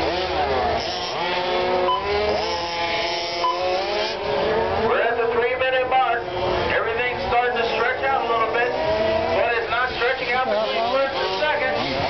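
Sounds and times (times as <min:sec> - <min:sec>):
rc car motors whining: 0:00.0 - 0:04.8, 0:05.5 - 0:12.0.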